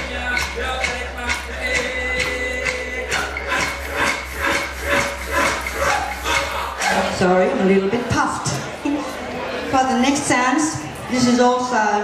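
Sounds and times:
man singing: 0:00.0 - 0:07.1
percussion beats: 0:00.0 - 0:08.8.

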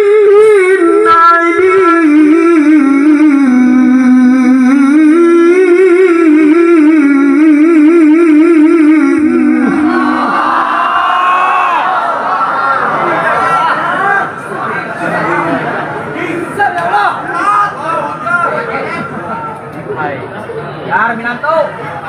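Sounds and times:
man singing through a pa: 0:00.0 - 0:09.9
crowd chatter and cheering: 0:09.6 - 0:22.0.

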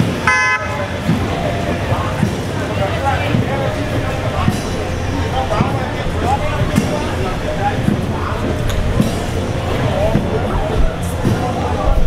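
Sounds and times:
street crowd chatter: 0:00.0 - 0:12.0
vehicle horn toot: 0:00.2 - 0:01.0.

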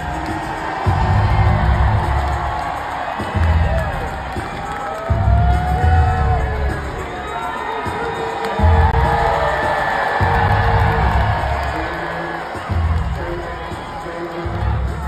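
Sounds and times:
entrance music with heavy bass beat: 0:00.0 - 0:15.0
large crowd cheering and whooping: 0:00.0 - 0:15.0.

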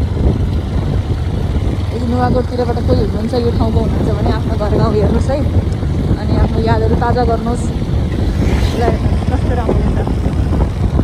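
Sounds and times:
motorbike engine: 0:00.0 - 0:11.0
road rumble: 0:00.0 - 0:11.0
wind buffeting microphone: 0:00.0 - 0:11.0.

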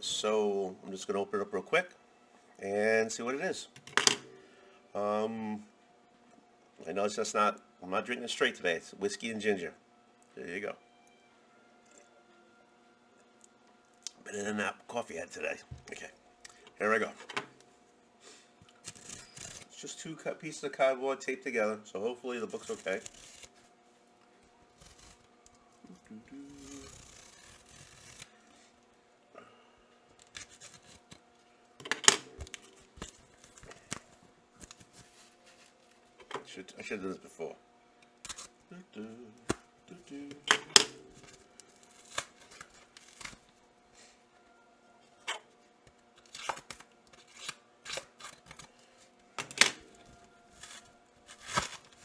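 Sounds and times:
knife scraping tape and cardboard: 0:18.8 - 0:19.8, 0:24.8 - 0:25.2, 0:26.6 - 0:28.3, 0:46.3 - 0:48.6.

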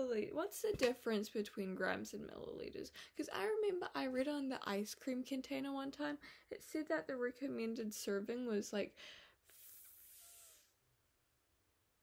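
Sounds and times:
breath out through nose: 0:09.0 - 0:10.8.

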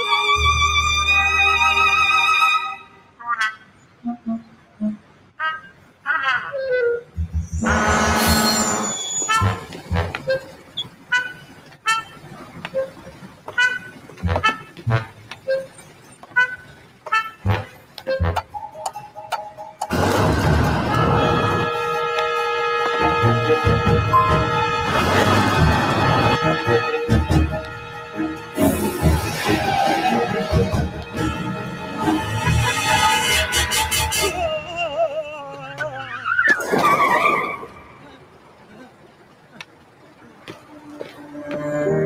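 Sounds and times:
cartoon tyres screeching: 0:04.0 - 0:18.6, 0:28.6 - 0:38.3, 0:40.2 - 0:42.0.

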